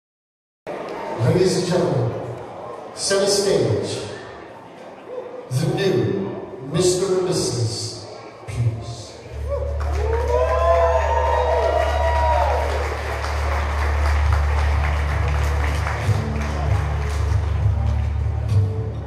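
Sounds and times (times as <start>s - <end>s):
crowd cheering and whooping: 9.3s - 18.5s
applause: 9.6s - 18.6s.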